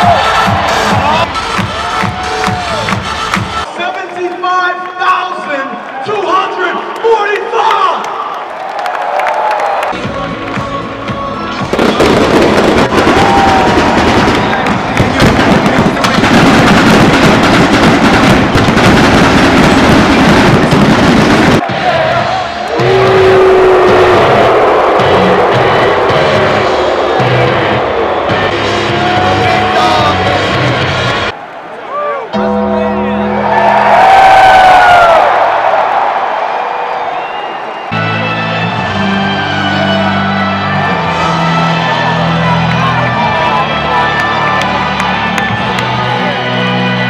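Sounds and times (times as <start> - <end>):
stadium pa music: 0.0 - 8.3, 9.8 - 47.0
large crowd: 0.0 - 47.0
pyrotechnics going off: 11.7 - 21.6.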